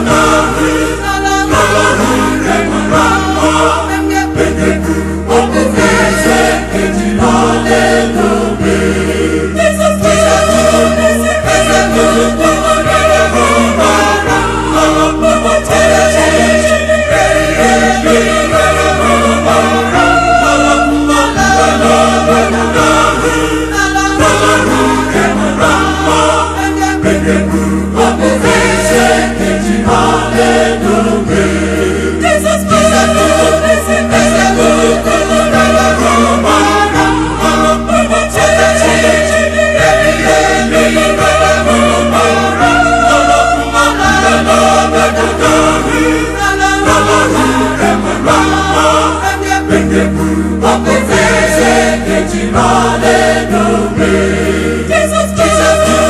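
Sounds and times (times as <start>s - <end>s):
choir singing in harmony: 0.0s - 56.0s.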